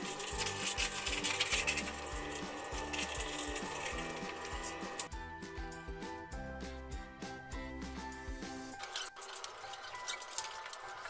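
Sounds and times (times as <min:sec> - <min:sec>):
background music with beat: 0:00.0 - 0:08.9.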